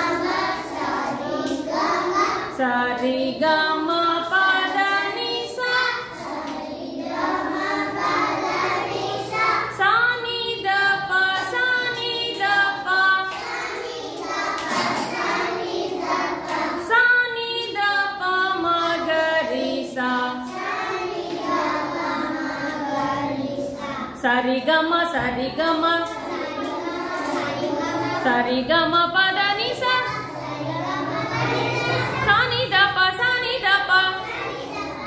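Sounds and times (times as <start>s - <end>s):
children singing in chorus: 0.0s - 24.2s, 26.0s - 28.5s, 29.7s - 35.0s.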